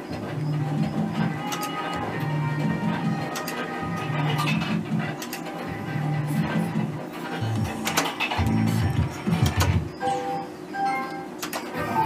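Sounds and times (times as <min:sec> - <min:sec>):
slot machine electronic tune: 0:00.4 - 0:12.0.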